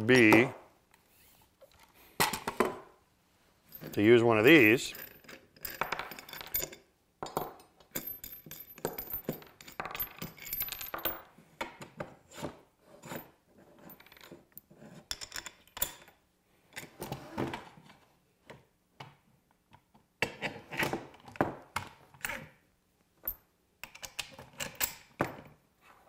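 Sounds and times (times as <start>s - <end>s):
metal hardware clinking on wood: 3.7s - 11.3s.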